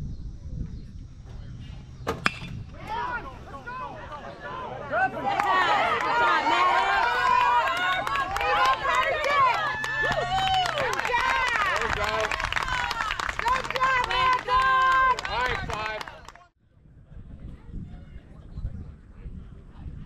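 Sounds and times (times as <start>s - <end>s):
crowd yelling and cheering: 2.9s - 16.3s.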